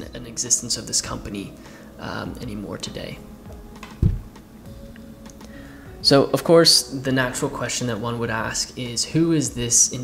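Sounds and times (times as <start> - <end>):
watch thumping on wooden table: 3.8 - 4.4.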